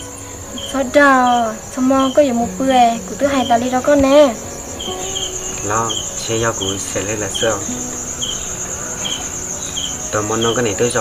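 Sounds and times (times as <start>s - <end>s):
insects trilling: 0.0s - 11.0s
short insect chirps: 0.0s - 11.0s
people talking: 0.6s - 7.8s, 10.2s - 11.0s.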